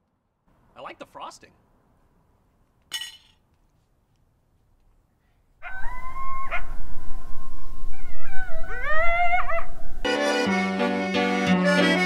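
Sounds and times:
gagged man howling: 5.6s - 6.7s, 8.0s - 9.8s.

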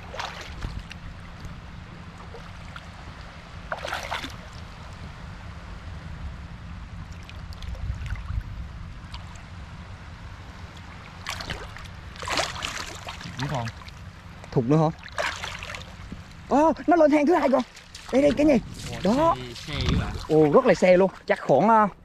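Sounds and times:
water splash: 0.0s - 5.0s, 7.0s - 9.5s, 10.5s - 16.4s, 17.3s - 21.4s
steady low rumble: 0.0s - 22.0s
water sloshing and trickling: 0.0s - 22.0s.

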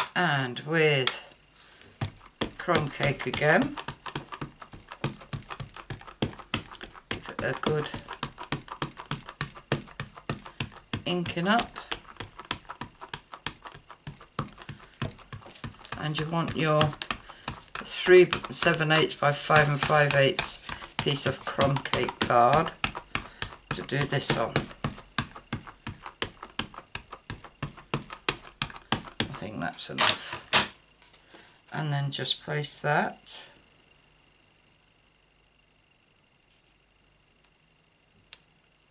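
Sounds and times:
ink pad tapping on plastic stamp: 2.0s - 29.4s.

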